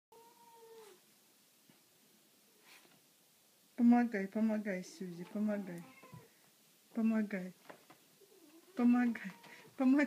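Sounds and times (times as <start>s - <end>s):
cat meowing: 0.1s - 1.0s, 5.2s - 6.3s.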